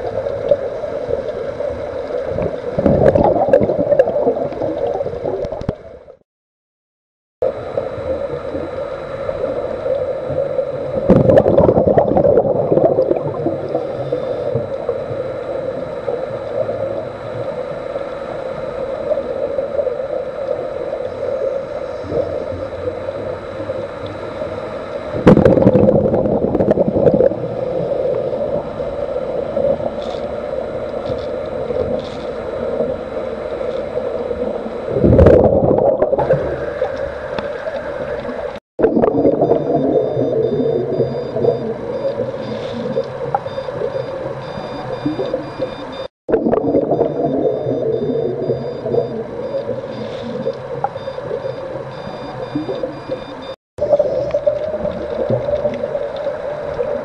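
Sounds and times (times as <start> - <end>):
steady hum: 0.0 - 6.2, 7.4 - 57.0
underwater air bubbling: 0.0 - 6.2, 7.4 - 57.0.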